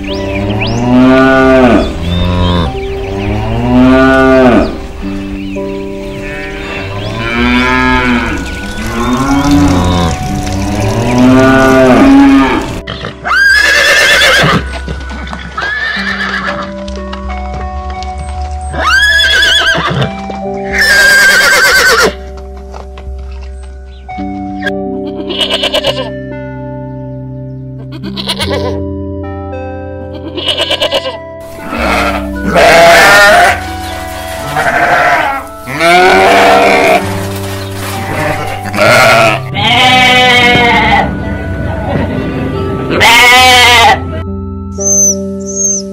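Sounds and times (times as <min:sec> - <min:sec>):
soft background music: 0:00.0 - 0:45.9
cows mooing: 0:00.2 - 0:04.9, 0:06.1 - 0:14.7, 0:30.2 - 0:44.2
horse whinnying: 0:11.9 - 0:14.7, 0:15.6 - 0:16.6, 0:18.8 - 0:20.1, 0:20.7 - 0:22.2, 0:30.4 - 0:33.6, 0:34.6 - 0:37.0.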